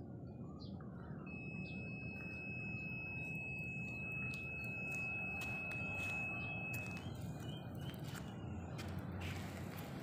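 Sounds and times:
low background rumble: 0.0 - 10.0
high-pitched tone: 1.2 - 7.1.

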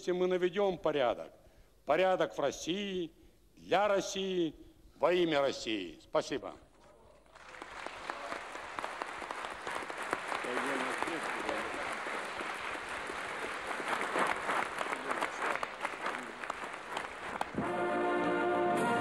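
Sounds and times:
voices among clapping: 7.2 - 17.6
audience applauding: 7.3 - 17.6.

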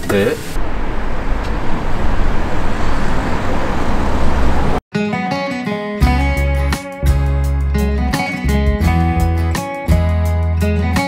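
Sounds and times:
road traffic roar: 0.6 - 4.8.

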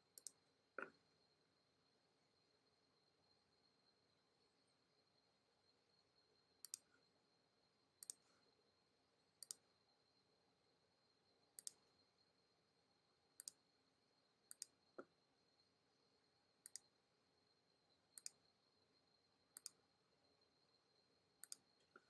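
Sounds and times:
faint high-pitched whine: 0.0 - 22.0
computer mouse clicks: 0.1 - 1.0, 6.6 - 6.9, 8.0 - 8.3, 9.4 - 9.6, 11.6 - 11.8, 13.4 - 13.6, 14.5 - 15.1, 16.6 - 16.9, 18.2 - 18.4, 19.5 - 19.8, 21.4 - 22.0.

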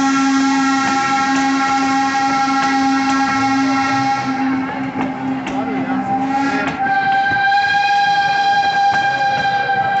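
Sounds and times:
steam locomotive whistle: 0.0 - 10.0.

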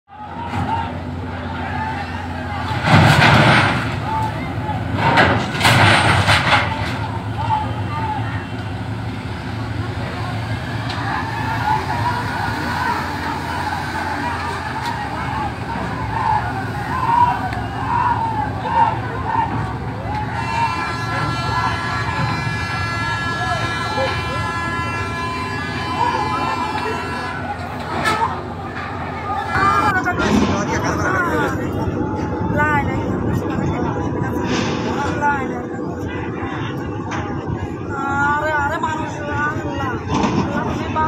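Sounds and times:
crowd shouting: 0.1 - 32.9
truck engines running: 0.1 - 41.0
steady horn: 4.9 - 30.5.

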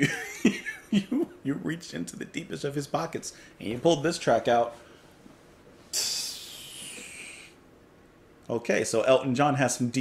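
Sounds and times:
man exhaling breathily: 5.9 - 7.6.

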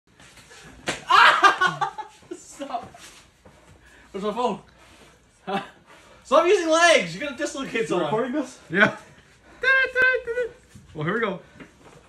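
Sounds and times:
sharp hand slap: 0.8 - 1.1
loud laughter: 1.0 - 2.2
men's voices: 6.3 - 11.4.

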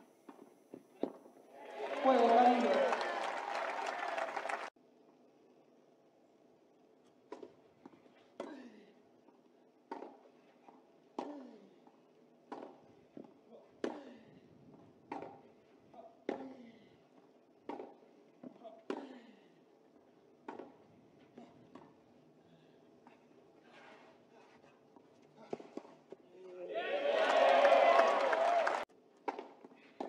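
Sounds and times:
racket striking tennis ball: 9.9 - 10.3, 12.5 - 14.1, 15.1 - 15.5, 17.7 - 18.0, 20.4 - 20.8
tennis ball bouncing: 9.9 - 11.5, 12.5 - 14.1, 15.1 - 15.5, 17.6 - 19.1, 20.4 - 20.9, 29.2 - 30.0.

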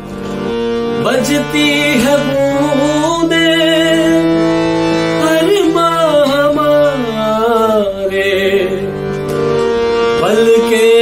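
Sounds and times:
man singing: 1.0 - 9.1, 10.1 - 11.0.

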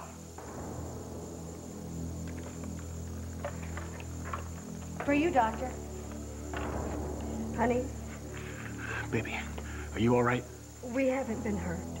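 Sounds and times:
steady low hum: 0.0 - 12.0
dramatic background music: 0.2 - 12.0.

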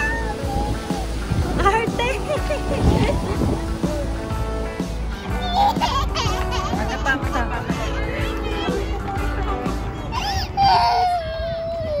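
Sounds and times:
toddler crying: 0.0 - 1.1, 5.1 - 6.8, 10.0 - 12.0.

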